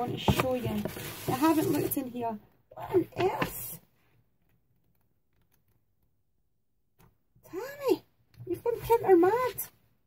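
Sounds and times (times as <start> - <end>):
paper sheets being leafed through: 0.2 - 2.1.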